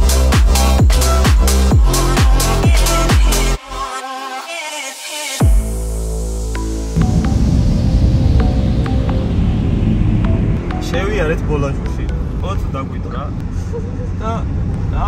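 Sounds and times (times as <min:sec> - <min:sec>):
low road rumble in car: 0:07.0 - 0:15.0
people talking: 0:10.8 - 0:15.0.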